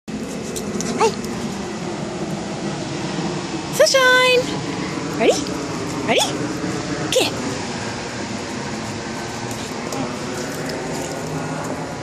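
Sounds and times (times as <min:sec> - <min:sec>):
steady background noise: 0:00.1 - 0:12.0.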